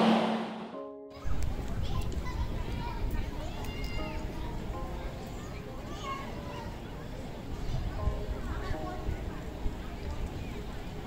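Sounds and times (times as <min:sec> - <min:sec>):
short pitched tone: 0:00.0 - 0:00.8.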